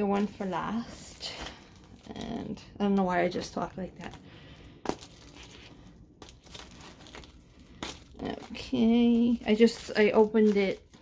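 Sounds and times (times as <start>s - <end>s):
plastic wrap crinkling and tearing: 0.0s - 11.0s.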